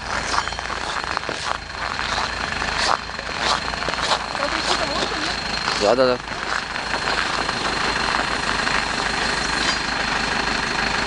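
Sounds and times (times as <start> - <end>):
footsteps crunching on snow: 0.0 - 10.2
diesel engine rumbling: 0.0 - 11.0.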